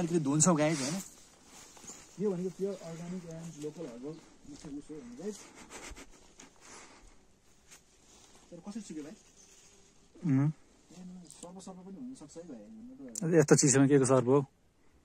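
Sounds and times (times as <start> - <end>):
man talking: 0.0 - 1.1, 2.1 - 5.5, 10.2 - 14.5
soft clicks and rustles: 1.0 - 6.7.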